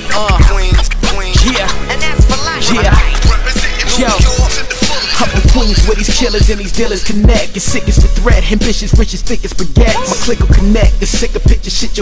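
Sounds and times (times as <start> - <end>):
rapping over a beat: 0.0 - 12.0
heavy bass kicks: 5.4 - 11.8.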